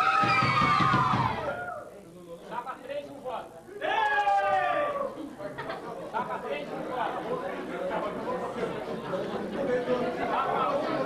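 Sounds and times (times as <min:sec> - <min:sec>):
crowd chatter: 0:00.8 - 0:11.0.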